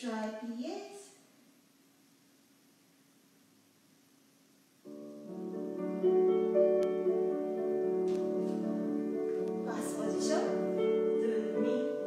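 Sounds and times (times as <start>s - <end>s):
faint steady hum: 0.0s - 12.0s
piano music: 4.8s - 12.0s.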